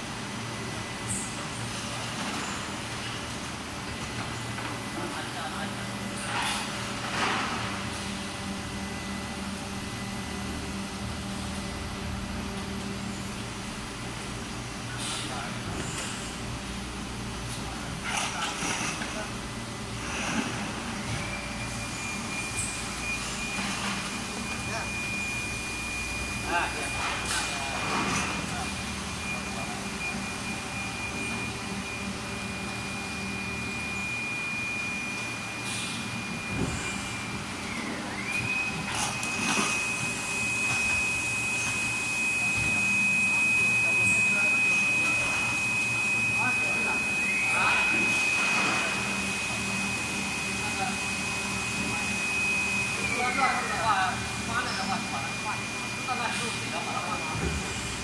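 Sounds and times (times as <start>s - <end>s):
low machine hum: 0.0s - 58.0s
high-pitched machine whine: 4.4s - 58.0s.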